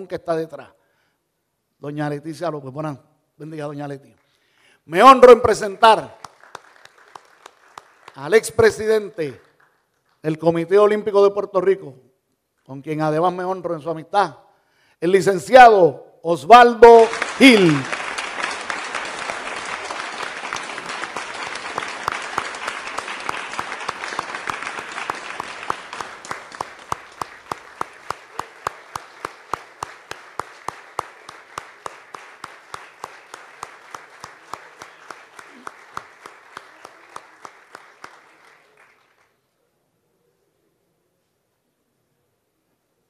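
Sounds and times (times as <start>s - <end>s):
audience applauding: 5.8s - 10.2s, 16.9s - 39.4s.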